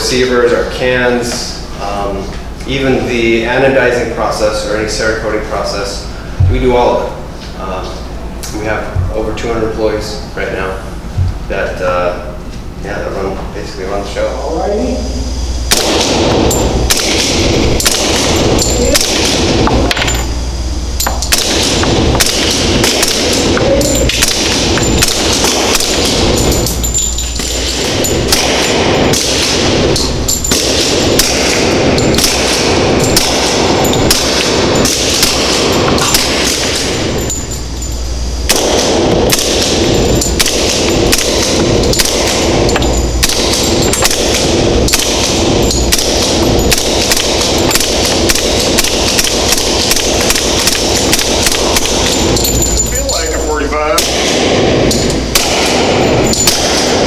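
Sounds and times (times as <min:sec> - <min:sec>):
suppressed gunshots: 0:15.7 - 0:19.7, 0:21.3 - 0:23.6, 0:27.4 - 0:37.3, 0:38.5 - 0:52.6, 0:54.0 - 0:57.0.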